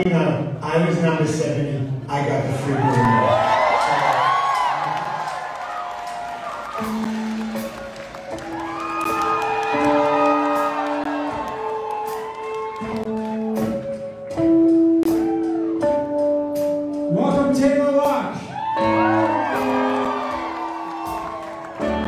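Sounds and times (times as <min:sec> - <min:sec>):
audience cheering and whooping: 0:02.6 - 0:13.8, 0:15.1 - 0:16.0, 0:18.4 - 0:22.0
live rock band playing: 0:06.0 - 0:22.0.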